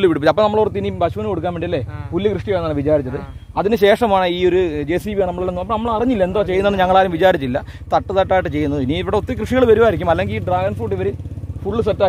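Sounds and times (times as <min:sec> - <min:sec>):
engine idling: 0:00.0 - 0:12.0
man talking: 0:00.0 - 0:12.0.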